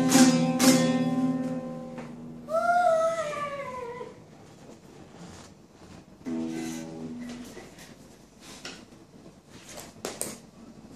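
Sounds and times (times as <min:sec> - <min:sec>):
small acoustic guitar chord strummed: 0:00.0 - 0:02.5, 0:06.2 - 0:07.8
child crying out: 0:02.5 - 0:04.2.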